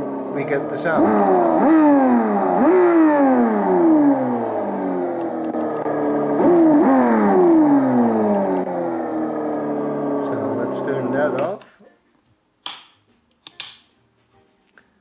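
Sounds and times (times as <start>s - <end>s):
simulated car engine revving: 0.0s - 11.6s.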